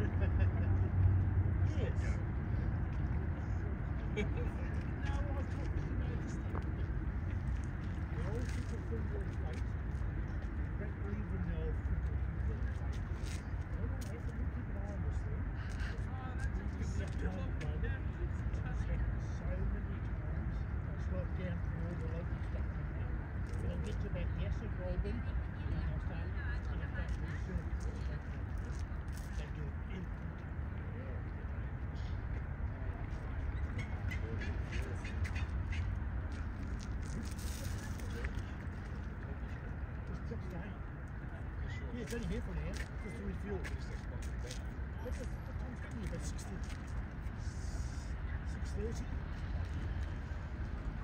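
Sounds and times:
faint voices: 0.0 - 51.0.

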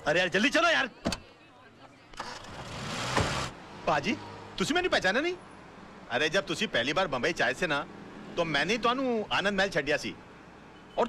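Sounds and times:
car door shutting: 2.2 - 3.5
car engine pulling away: 2.2 - 4.5.

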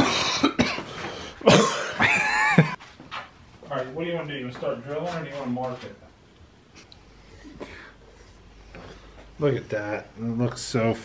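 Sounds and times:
man coughing hard: 0.0 - 2.8.

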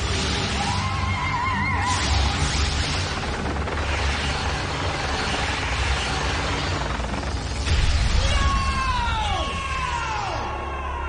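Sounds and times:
dramatic score: 0.0 - 11.0
creature screech: 0.6 - 2.4.

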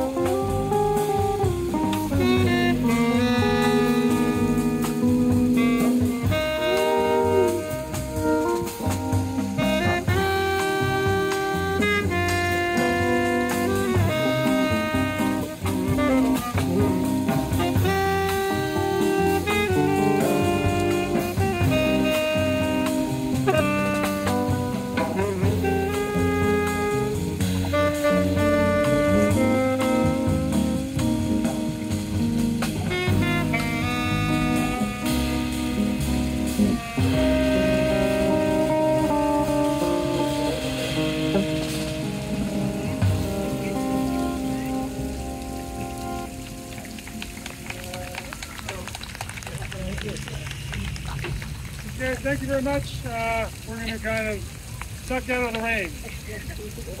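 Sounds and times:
drum kit: 0.0 - 52.0
electric guitar: 0.0 - 52.0
saxophone: 0.0 - 52.5
rain falling: 0.0 - 57.0
upright bass: 0.0 - 57.0.

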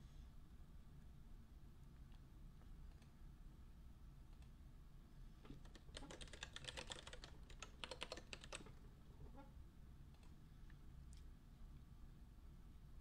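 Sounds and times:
typing on computer keyboard: 5.5 - 8.8.

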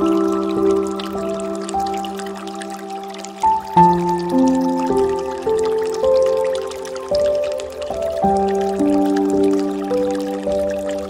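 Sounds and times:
calm instrumental music: 0.0 - 11.0.

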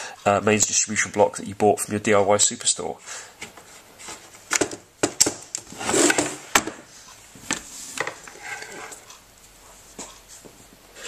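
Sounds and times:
metal rubbing scrape: 7.7 - 9.2.

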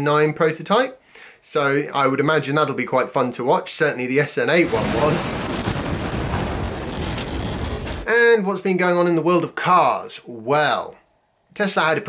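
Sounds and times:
rocket engines firing: 4.6 - 8.1.

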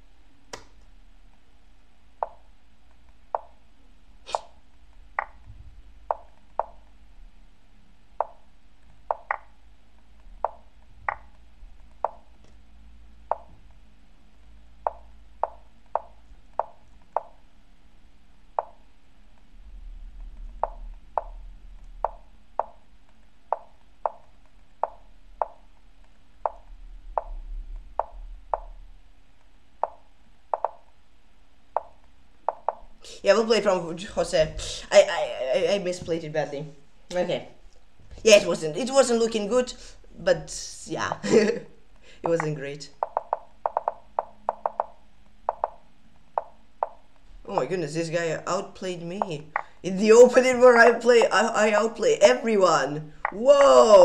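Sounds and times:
faint low rumble: 0.0 - 54.0
wooden chess move clicks: 0.5 - 0.9, 8.2 - 9.5, 29.8 - 30.8, 42.2 - 45.8.

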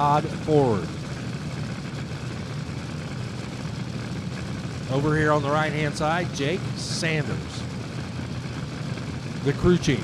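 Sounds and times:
dragster engines idling: 0.0 - 10.0.

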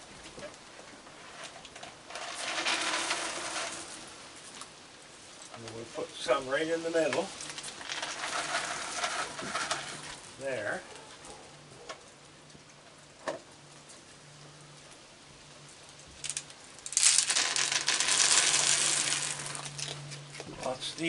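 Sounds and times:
kibble pouring onto wooden boards: 2.0 - 4.6, 7.0 - 10.4, 16.2 - 20.0.

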